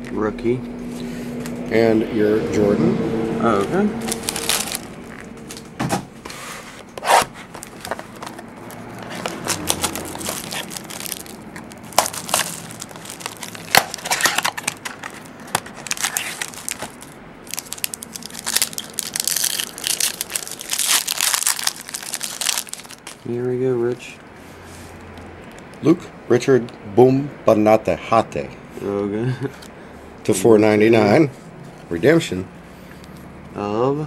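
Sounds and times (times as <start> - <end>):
card pack wrapper crinkling and tearing: 4.0 - 5.7, 7.1 - 23.4.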